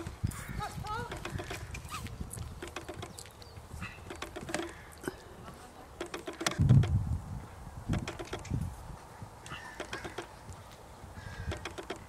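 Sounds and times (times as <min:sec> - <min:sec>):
horse hooves cantering on soft ground: 0:00.0 - 0:06.8.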